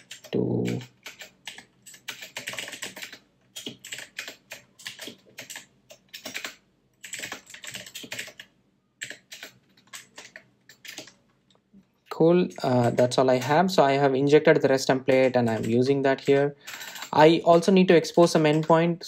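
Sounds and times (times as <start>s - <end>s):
typing on computer keyboard: 0.0s - 11.2s, 12.4s - 13.8s, 14.7s - 18.8s.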